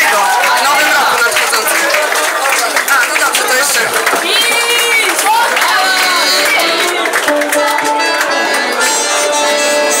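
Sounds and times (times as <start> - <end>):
live band music: 5.6 - 10.0.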